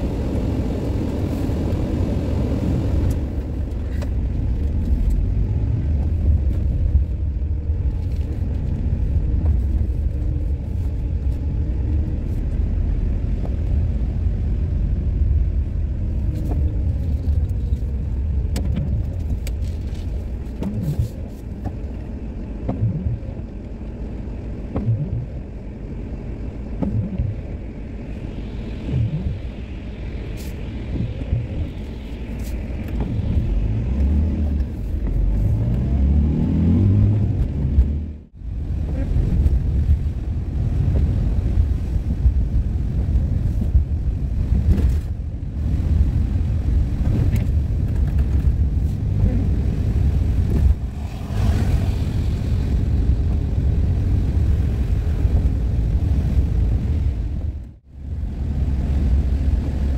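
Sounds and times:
van engine accelerating: 0.0s - 59.9s.

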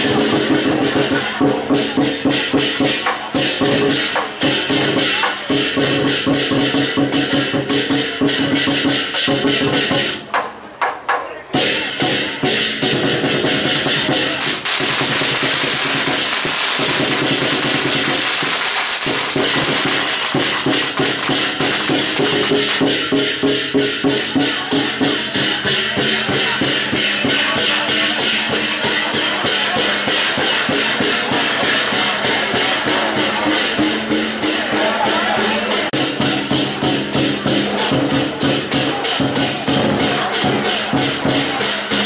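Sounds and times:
barrel drum beating: 0.0s - 42.0s
cymbals and gongs: 0.0s - 42.0s.

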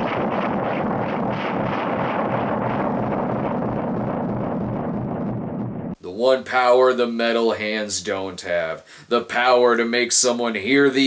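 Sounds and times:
loud rushing noise: 0.0s - 6.0s.

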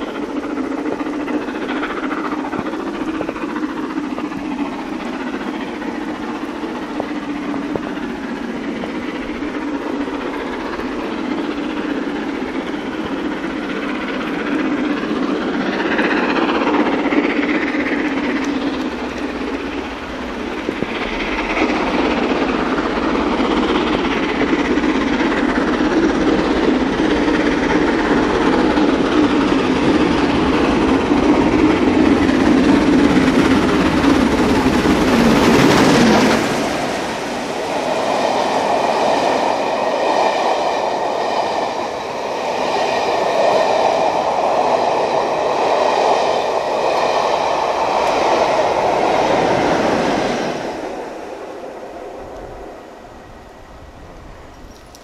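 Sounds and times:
wheels clacking over rail joints: 0.0s - 51.3s, 53.8s - 55.0s
steam locomotive passing: 0.0s - 55.0s.

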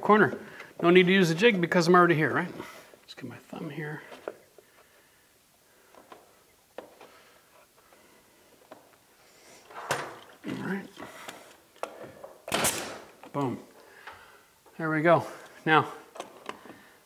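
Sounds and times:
person muttering: 10.4s - 11.1s.

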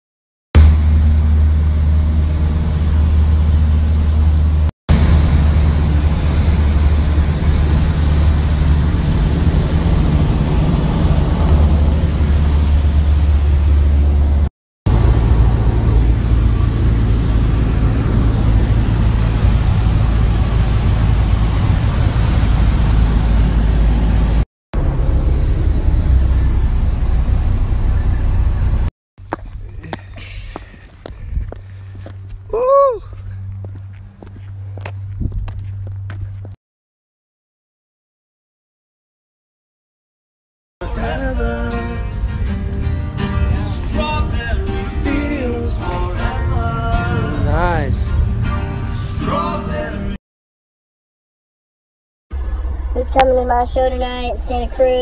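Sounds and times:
propeller plane engine drone: 0.6s - 36.5s, 52.4s - 55.0s.

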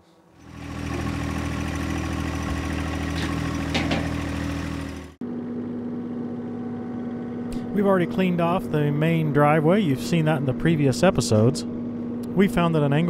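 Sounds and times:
tractor engine running: 0.3s - 13.0s.

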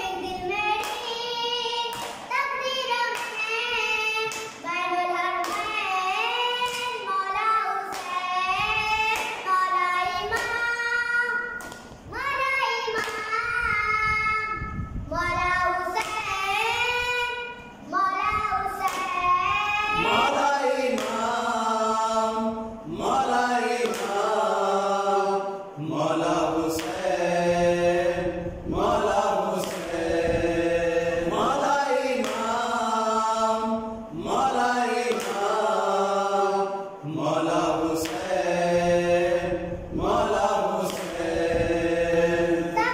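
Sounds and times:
boy singing a lament: 0.0s - 28.2s, 28.8s - 42.9s.

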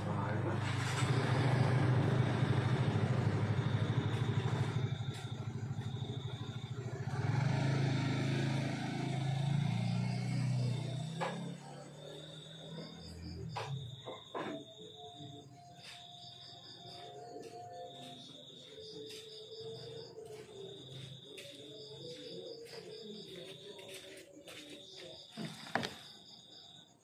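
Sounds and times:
vehicle engine droning: 0.0s - 18.2s.

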